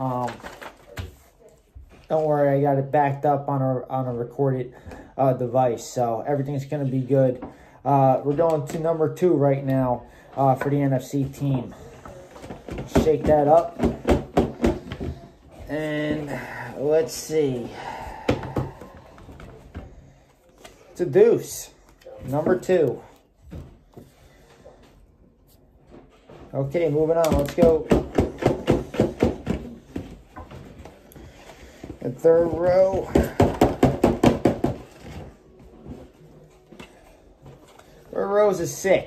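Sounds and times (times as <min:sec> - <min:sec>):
playing card clicks and rustles: 0:00.1 - 0:01.4.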